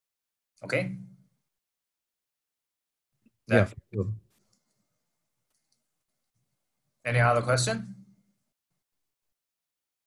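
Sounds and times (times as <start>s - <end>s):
faint clicks: 4.3s - 4.9s, 5.5s - 6.5s.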